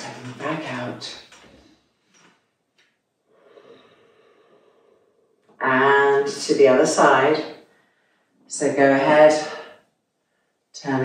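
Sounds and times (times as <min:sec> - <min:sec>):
soft breath exhale: 0:03.3 - 0:05.4
woman speaking loudly: 0:05.6 - 0:07.5, 0:08.5 - 0:09.6, 0:10.8 - 0:11.0.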